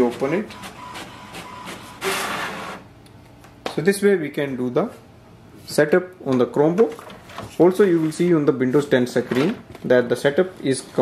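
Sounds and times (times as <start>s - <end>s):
inkjet printer printing: 0.0s - 2.9s.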